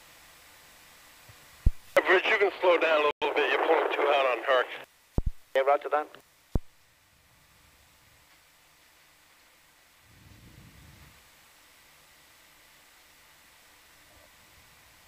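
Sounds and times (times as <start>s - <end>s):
faint steady hiss: 0.0s - 15.0s.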